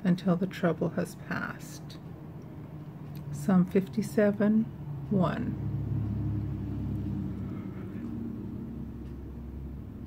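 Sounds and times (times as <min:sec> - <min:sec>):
low mechanical drone with hum: 0:00.0 - 0:10.0.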